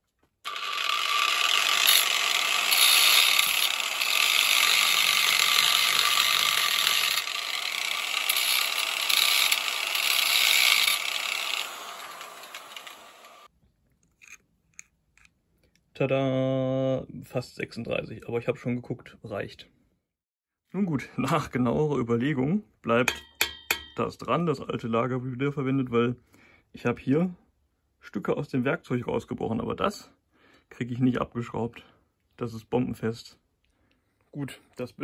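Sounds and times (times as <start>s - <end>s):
angle grinder grinding steel: 0.4s - 13.5s.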